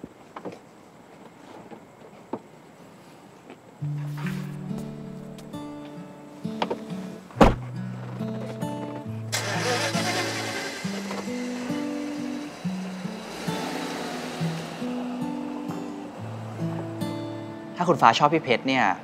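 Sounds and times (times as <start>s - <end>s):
soft background music: 3.8s - 19.0s
car door shutting: 6.6s - 7.7s
car pulling away: 8.2s - 17.8s.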